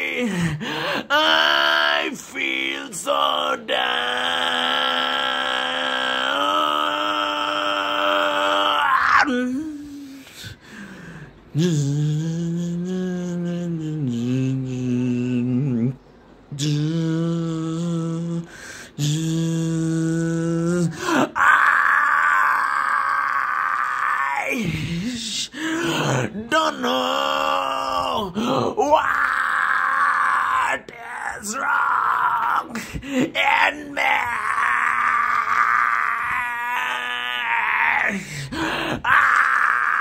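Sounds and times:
man singing: 0.0 - 7.2, 11.5 - 38.2
man screaming raspily: 1.1 - 9.6, 21.0 - 38.2, 38.9 - 40.0
man singing a long note: 11.5 - 22.2
man humming: 11.5 - 40.0.

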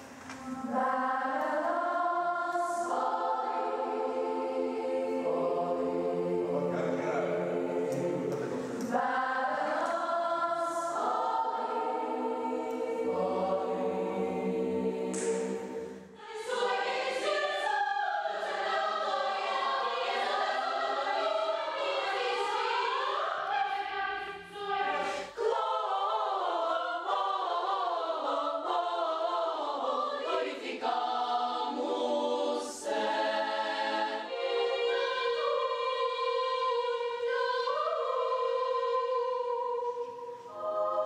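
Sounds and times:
children's choir singing: 0.0 - 41.0.

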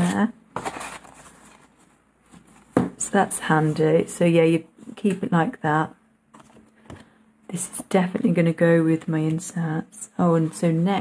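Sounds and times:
faint rustling of plastic and card: 0.0 - 2.8, 6.3 - 7.1.

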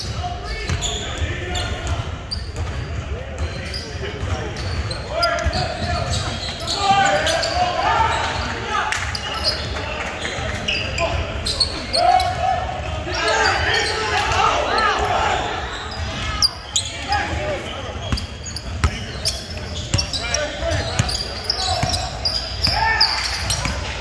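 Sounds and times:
shouts and chatter: 4.0 - 24.0.

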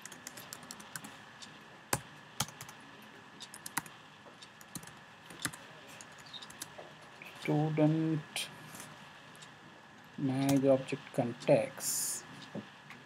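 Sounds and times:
typing on computer keyboard: 0.0 - 1.1, 1.9 - 2.8, 3.5 - 3.9, 4.6 - 6.7.

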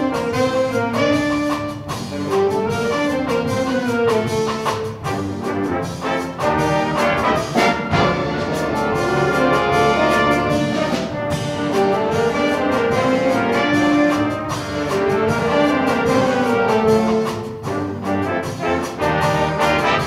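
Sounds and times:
big band playing: 0.0 - 20.0
drum kit keeping time: 0.0 - 20.0.

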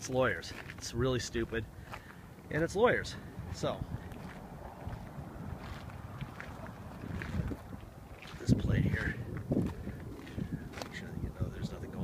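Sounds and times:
wind buffeting microphone: 0.2 - 12.0.

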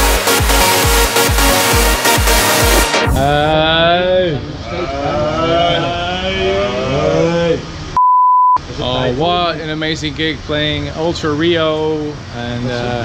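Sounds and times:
censor bleep tone: 8.0 - 8.6.

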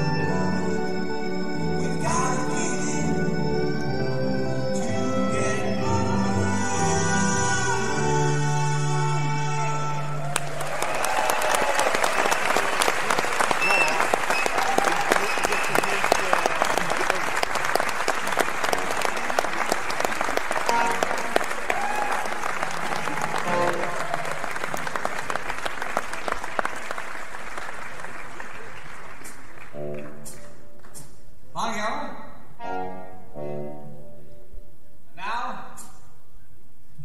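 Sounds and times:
audience applauding: 10.2 - 30.9.

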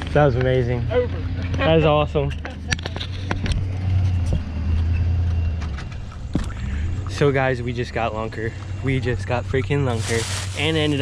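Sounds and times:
vehicle engine rumbling: 0.0 - 11.0.

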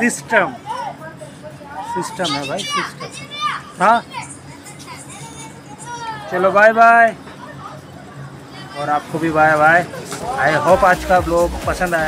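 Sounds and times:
children calling out: 0.6 - 6.5.

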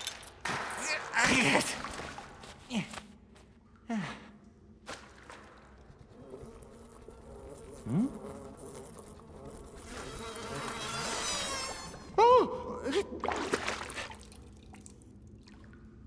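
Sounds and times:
flies buzzing: 5.9 - 12.1.

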